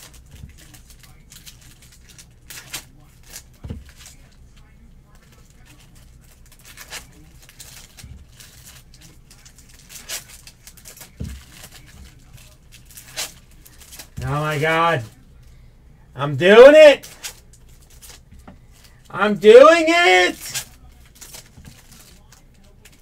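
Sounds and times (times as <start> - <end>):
foil wrappers tearing: 0.0 - 14.5, 20.2 - 23.0
rustles and crinkles: 0.0 - 15.6, 16.6 - 23.0.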